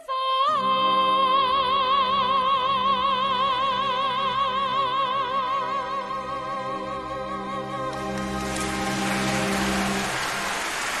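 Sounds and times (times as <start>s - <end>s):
audience applause: 7.9s - 11.0s.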